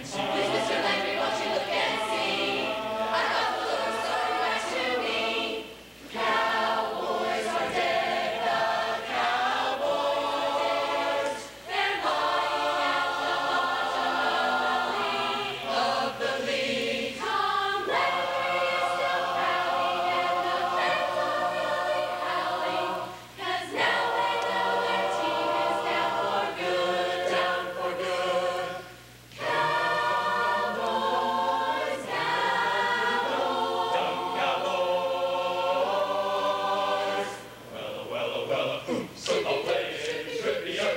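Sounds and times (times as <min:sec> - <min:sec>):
choir singing a cappella: 0:00.0 - 0:40.9.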